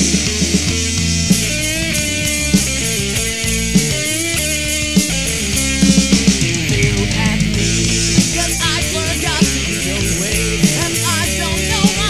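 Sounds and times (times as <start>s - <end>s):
bass guitar: 0.0s - 12.0s
strummed guitar: 0.0s - 12.0s.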